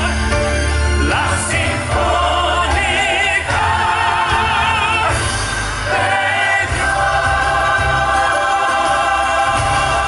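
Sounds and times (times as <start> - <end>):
choir singing a hymn: 1.0 - 10.0.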